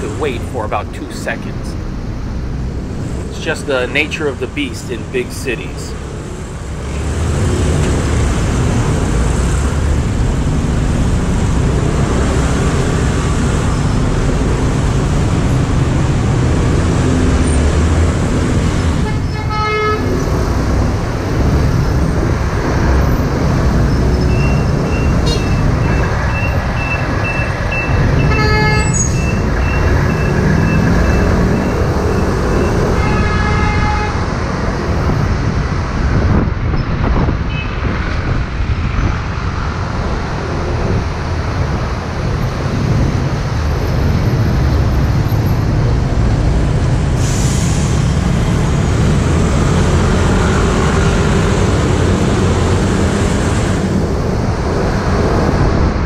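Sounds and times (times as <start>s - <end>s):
traffic engine rumble: 0.0s - 56.0s
car horn toots: 19.0s - 20.1s, 28.2s - 29.1s, 33.0s - 34.2s.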